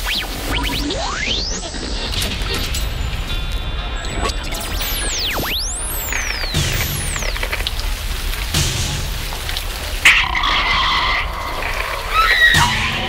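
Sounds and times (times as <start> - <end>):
harsh noise burst: 0.0 - 13.0
low rumble: 1.7 - 13.0
dull hits: 6.1 - 13.0.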